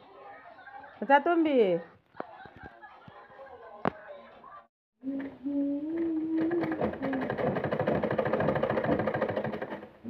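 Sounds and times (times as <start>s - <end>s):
sewing machine stitching: 6.3s - 10.0s.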